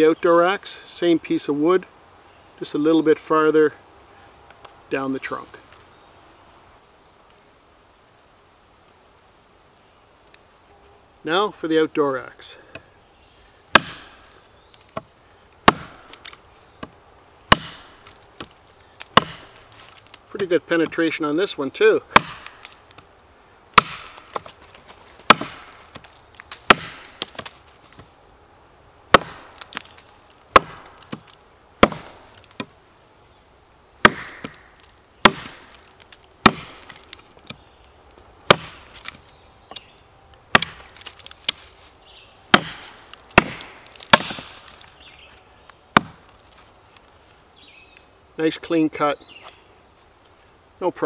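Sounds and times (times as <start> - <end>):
axe chopping branch: 13.7 - 20.2, 22.1 - 23.1, 23.8 - 28.1, 29.1 - 32.7, 34.0 - 37.6, 38.5 - 39.9, 40.5 - 41.7, 42.5 - 45.2, 45.9 - 46.5.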